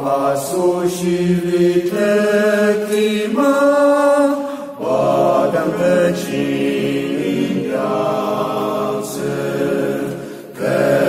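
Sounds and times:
voices singing a hymn: 0.0s - 11.0s.

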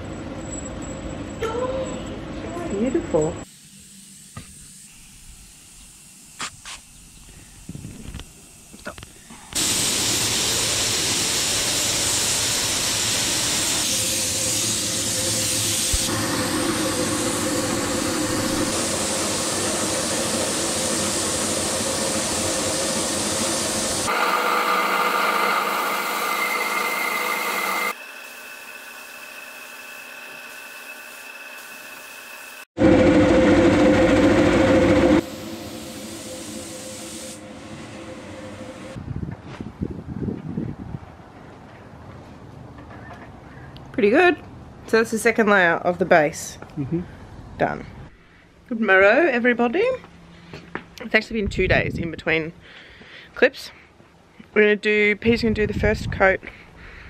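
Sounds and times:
paint spray gun hissing: 3.4s - 32.7s, 35.2s - 39.0s.

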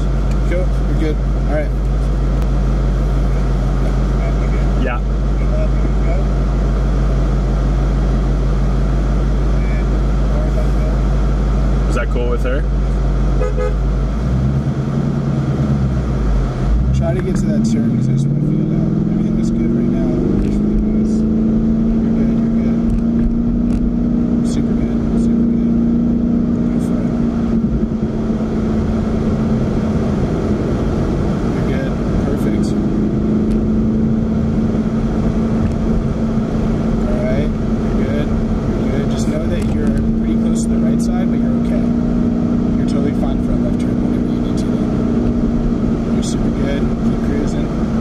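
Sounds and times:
car engine from inside cabin: 0.0s - 48.0s
road and wind noise: 0.0s - 48.0s.

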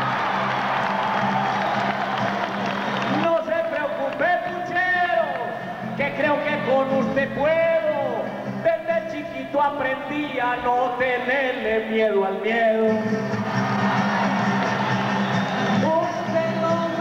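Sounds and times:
crowd cheering and applauding: 0.0s - 4.8s, 13.2s - 17.0s
man singing: 3.1s - 13.4s, 15.7s - 17.0s
strummed acoustic guitar: 4.6s - 11.0s.

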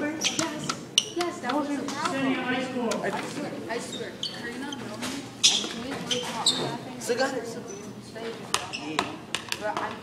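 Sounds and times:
voices chattering in echoing room: 0.0s - 10.0s.

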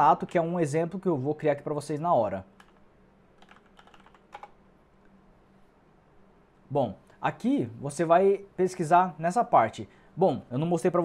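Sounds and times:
faint steady hum: 0.0s - 11.0s
computer keyboard keystrokes: 2.6s - 2.8s, 3.4s - 4.6s.

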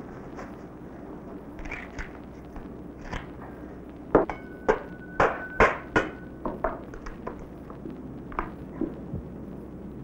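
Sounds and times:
thin ringing tone: 4.3s - 6.5s.

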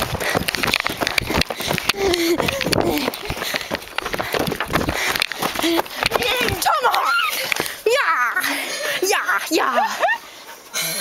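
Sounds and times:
handheld camera rubbing and knocking: 0.0s - 6.6s
running footsteps on gravel: 0.0s - 9.0s.

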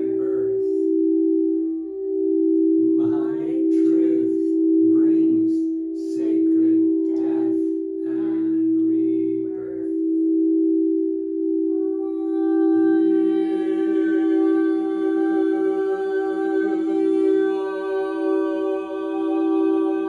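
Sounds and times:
crystal singing bowls ringing: 0.0s - 20.0s.

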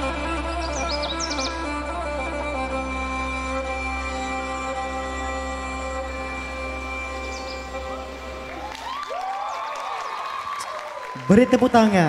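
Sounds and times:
sustained musical chord: 0.0s - 9.8s
audience cheering: 7.8s - 12.0s
applause: 8.5s - 12.0s.

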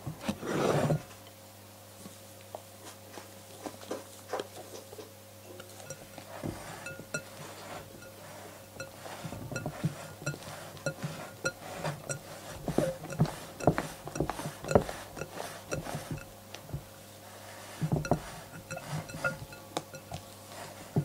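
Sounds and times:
spatula folding batter squelching: 5.6s - 21.0s
glass knocking on glass: 9.6s - 16.3s, 17.9s - 20.2s.

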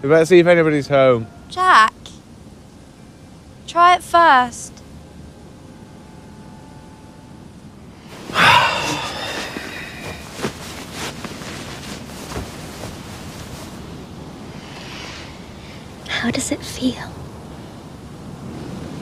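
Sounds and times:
bedding rustling: 8.0s - 14.8s
pillows knocking: 8.1s - 13.8s.

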